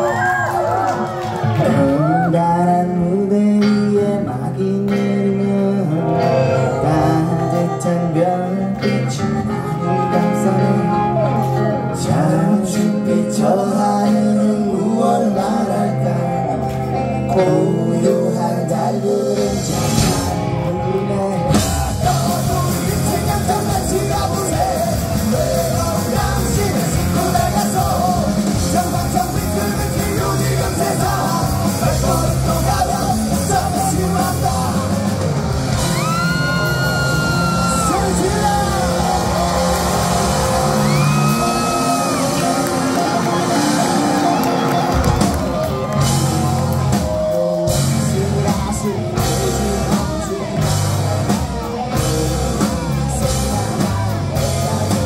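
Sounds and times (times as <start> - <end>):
punk rock band playing: 0.0 - 55.0
sung and yelled vocals: 0.0 - 55.0
accordion: 5.8 - 13.2.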